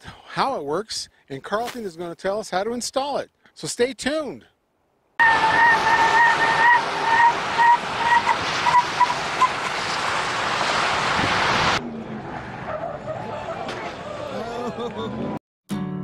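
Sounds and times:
brakes squealing and chirping: 0:05.2 - 0:14.4
tyre and wind noise: 0:08.3 - 0:11.8.

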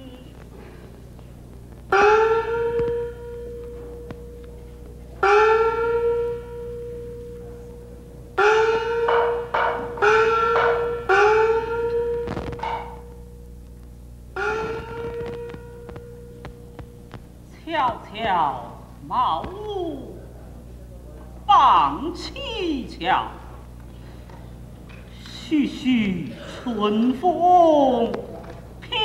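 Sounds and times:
small gong strikes ringing: 0:01.9 - 0:13.7, 0:14.3 - 0:17.2.

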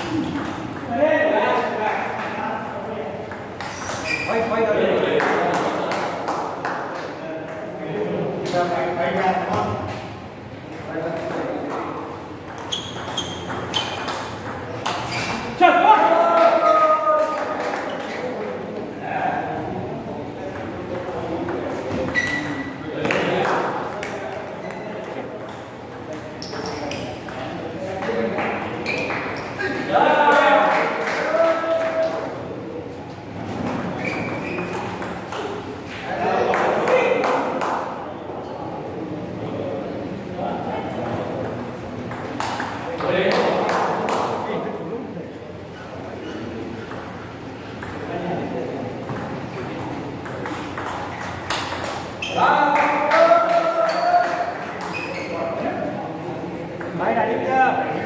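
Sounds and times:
table tennis ball clicks and bounces: 0:00.0 - 0:01.0, 0:02.0 - 0:04.3, 0:08.6 - 0:15.3, 0:20.5 - 0:29.4, 0:33.6 - 0:36.1, 0:40.9 - 0:44.8, 0:46.8 - 0:48.2, 0:48.9 - 0:52.3, 0:53.0 - 0:57.0
ping pong ball clicking: 0:12.5 - 0:15.0, 0:33.8 - 0:36.0, 0:41.0 - 0:43.1, 0:47.8 - 0:48.1, 0:49.0 - 0:52.1.

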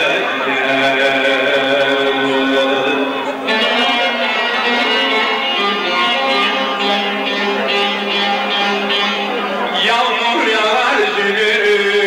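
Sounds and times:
plucked string instrument: 0:00.0 - 0:12.0.

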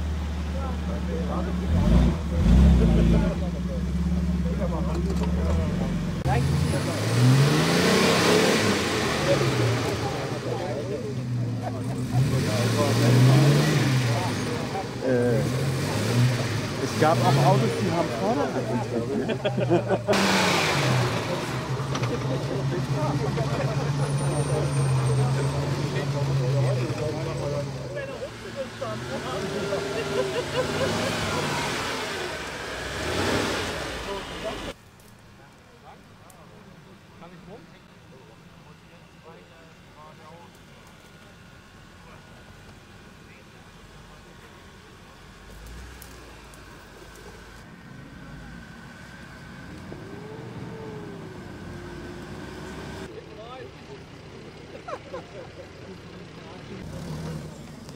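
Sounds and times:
people talking: 0:00.0 - 0:32.8, 0:33.6 - 0:57.9
engine working under load: 0:00.0 - 0:34.9, 0:35.8 - 0:57.9.

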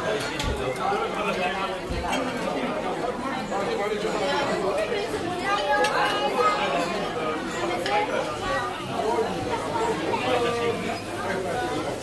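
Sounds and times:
diners chatting: 0:00.0 - 0:12.0
cutlery clinking on plates: 0:00.1 - 0:02.6.

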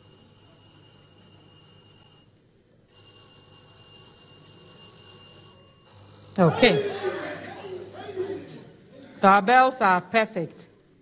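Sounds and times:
electronic quiz bell ringing: 0:02.9 - 0:06.0.

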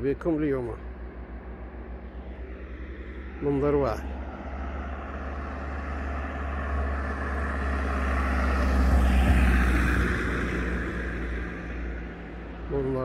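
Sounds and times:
car driving past: 0:00.7 - 0:13.0.

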